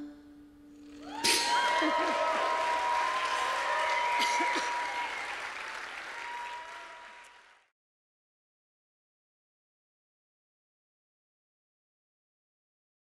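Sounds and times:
audience applauding and cheering: 0.9s - 7.7s.

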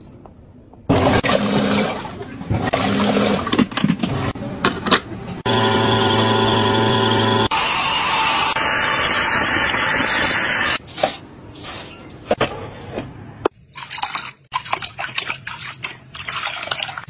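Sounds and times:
stick vacuum cleaner running: 5.4s - 10.8s.

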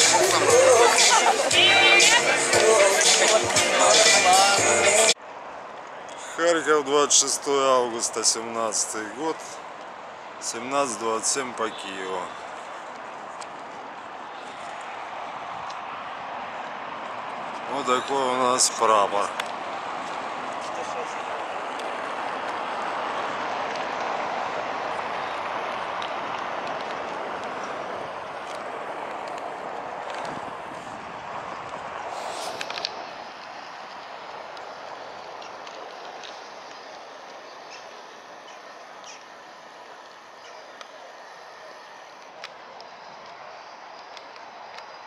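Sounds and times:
distant traffic: 0.0s - 45.0s.

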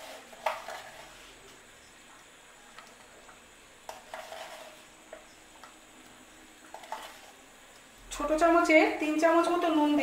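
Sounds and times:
pot simmering with bubbling hiss: 0.0s - 9.2s.

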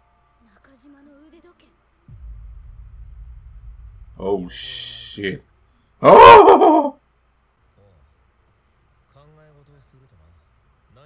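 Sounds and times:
deep tense bass drone: 2.1s - 4.6s.

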